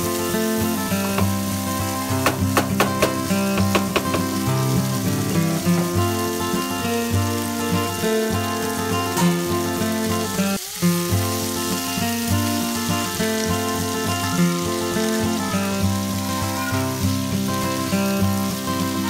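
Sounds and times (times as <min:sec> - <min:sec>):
background music: 0:00.0 - 0:10.5
vegetables sizzling in oil: 0:00.0 - 0:19.0.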